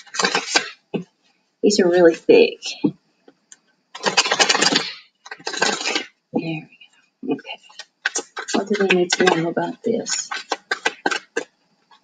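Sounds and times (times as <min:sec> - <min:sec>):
cards being shuffled: 0:00.0 - 0:00.8, 0:04.0 - 0:06.1, 0:07.6 - 0:12.0.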